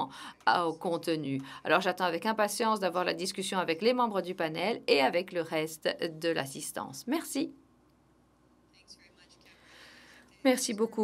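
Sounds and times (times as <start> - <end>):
faint breathy sound near microphone: 0.0 - 0.5, 1.4 - 1.7, 8.7 - 10.5.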